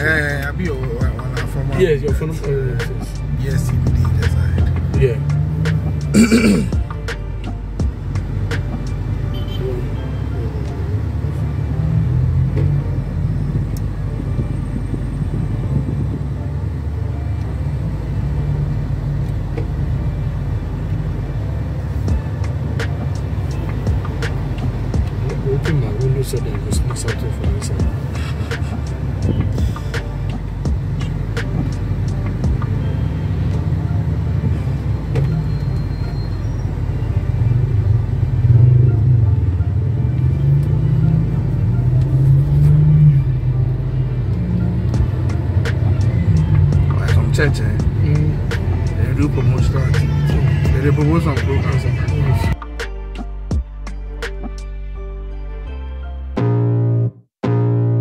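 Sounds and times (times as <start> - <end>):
car engine and tyres rumbling: 0.0 - 55.1.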